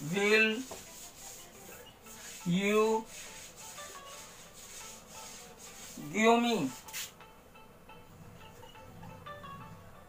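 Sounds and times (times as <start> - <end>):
marker scratching on whiteboard: 0.0 - 7.2.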